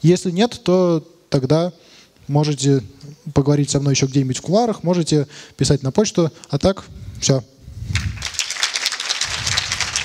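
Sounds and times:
audience applauding: 0:08.0 - 0:10.0.

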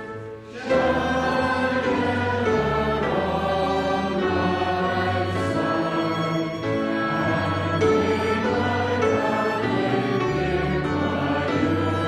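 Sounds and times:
congregation singing a hymn: 0:00.0 - 0:12.0
instrumental accompaniment: 0:00.0 - 0:12.0.

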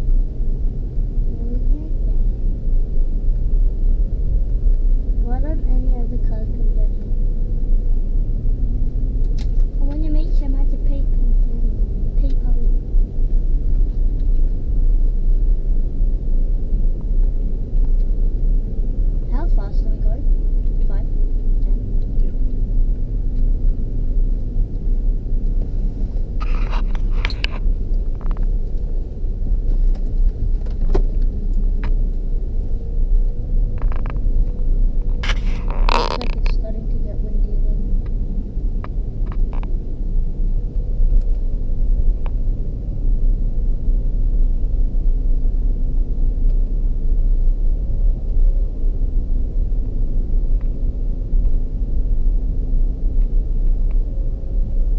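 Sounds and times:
car driving on sand rumble: 0:00.0 - 0:54.9.

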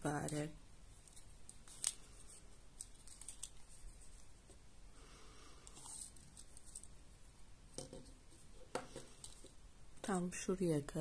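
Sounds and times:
soft rustle of fabric: 0:00.0 - 0:09.6.

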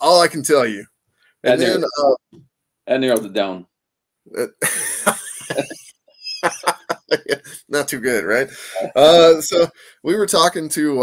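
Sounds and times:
man saying uh: 0:00.0 - 0:00.8, 0:01.5 - 0:02.2, 0:04.4 - 0:11.0.

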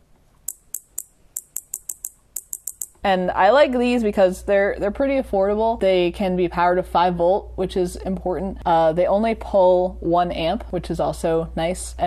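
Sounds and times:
solenoid plunger clicking: 0:00.5 - 0:03.0.

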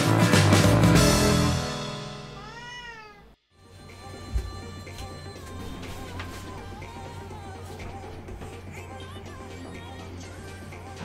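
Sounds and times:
music: 0:00.0 - 0:02.8, 0:03.5 - 0:11.0
cat meowing: 0:02.4 - 0:03.4.

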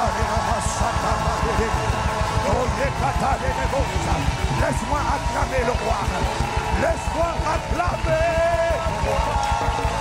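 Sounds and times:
man vocalizing into a microphone: 0:00.0 - 0:06.0
electric guitar: 0:00.0 - 0:10.0
live band music: 0:00.0 - 0:10.0
pulsing low beat: 0:00.0 - 0:10.0.

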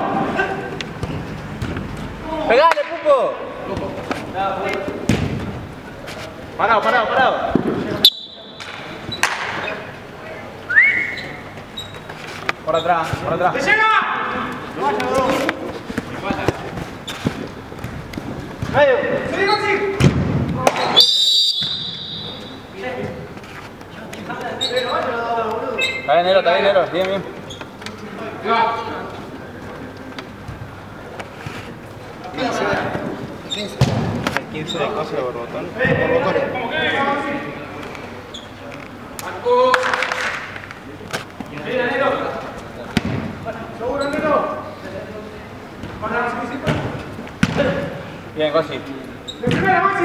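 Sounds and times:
referee's whistle blast: 0:08.0 - 0:08.7, 0:20.8 - 0:22.6.

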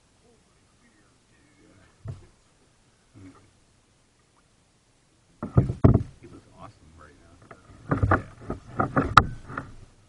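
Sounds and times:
paddle knocking on kayak hull: 0:05.4 - 0:06.2.

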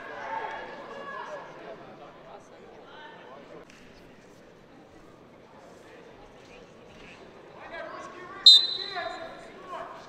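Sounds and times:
voices in a large hall: 0:00.0 - 0:10.0.

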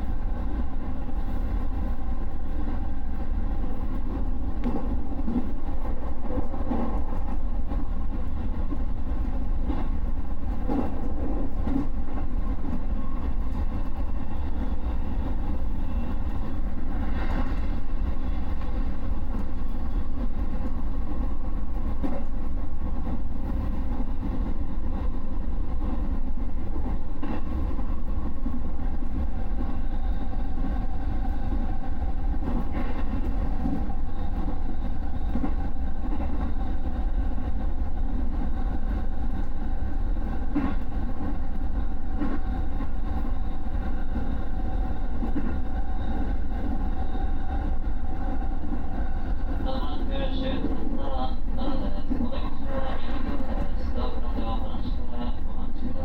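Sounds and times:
train rumbling on rails: 0:00.0 - 0:56.0.

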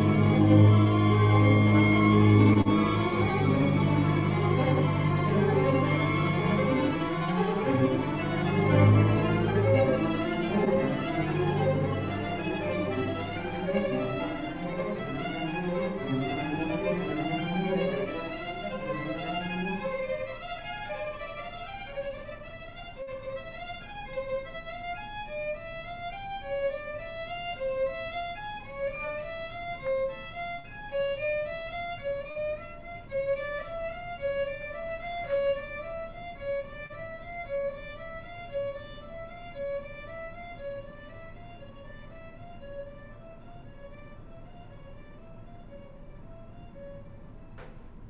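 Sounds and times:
violins and violas repeated notes: 0:00.0 - 0:24.9
low cello and bass notes: 0:00.0 - 0:48.0.

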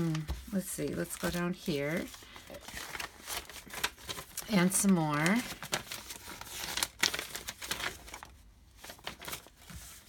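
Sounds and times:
paper sheets shuffled by hand: 0:00.0 - 0:10.0.

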